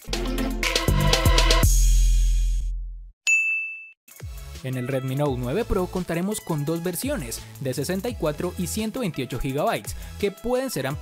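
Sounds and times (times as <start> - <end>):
bright electronic ding: 3.3 - 4.0.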